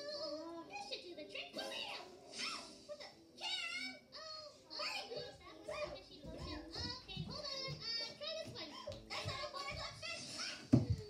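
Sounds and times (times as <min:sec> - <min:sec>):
children's playful voices: 0:00.0 - 0:11.0.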